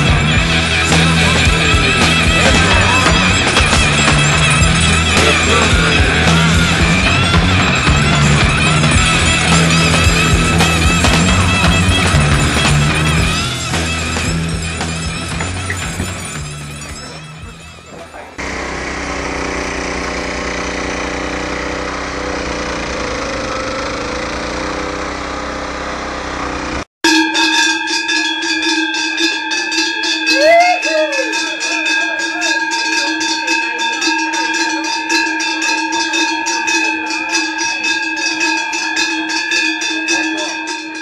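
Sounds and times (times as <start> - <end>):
cowbells ringing: 0.0 - 18.4, 27.1 - 41.0
snowblower engine running: 0.0 - 26.9.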